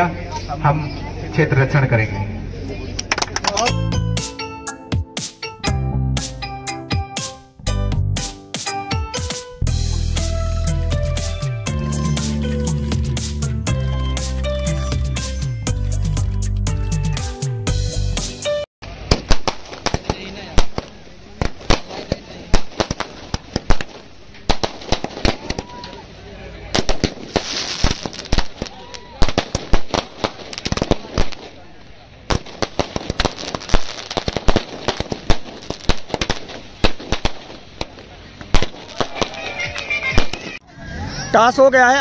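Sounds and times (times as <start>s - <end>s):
firecrackers banging: 2.9s - 4.4s, 18.8s - 40.6s.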